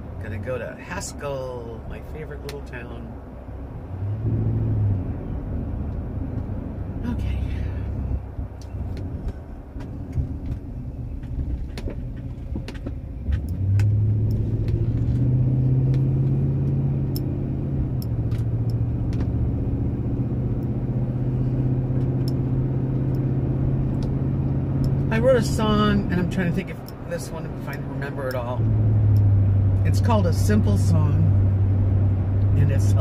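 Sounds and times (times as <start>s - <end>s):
car engine accelerating: 2.5s - 33.0s.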